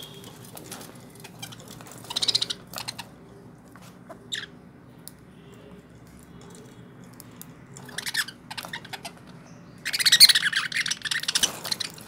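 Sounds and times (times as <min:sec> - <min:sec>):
budgerigars chirping: 0:01.2 - 0:03.2, 0:07.9 - 0:12.0.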